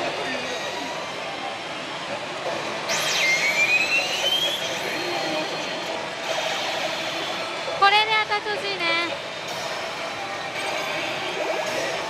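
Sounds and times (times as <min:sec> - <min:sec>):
slot machines: 0:02.6 - 0:12.0
slot machine rising electronic tone: 0:02.8 - 0:07.5.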